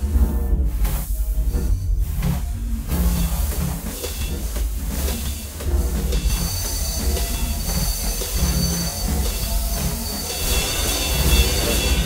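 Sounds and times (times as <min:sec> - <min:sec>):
dense low rumble: 0:00.0 - 0:12.0
hissing noise: 0:00.0 - 0:12.0
high whining tones: 0:01.2 - 0:12.0.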